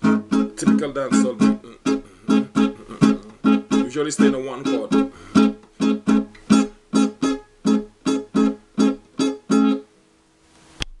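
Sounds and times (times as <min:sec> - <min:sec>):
guitar strumming: 0:00.0 - 0:09.9.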